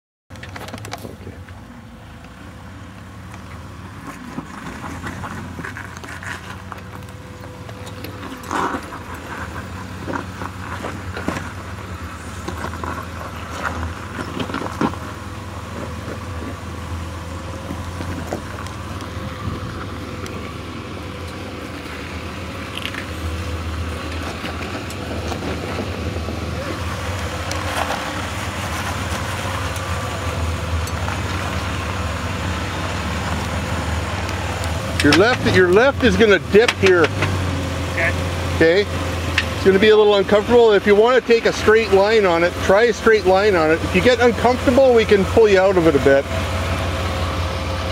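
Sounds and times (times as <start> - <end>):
off-road vehicle engine at low revs: 0.3 - 47.9.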